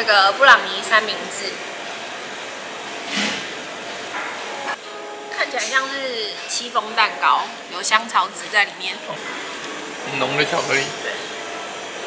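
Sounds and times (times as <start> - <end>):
fan-like room noise: 0.0 - 12.0.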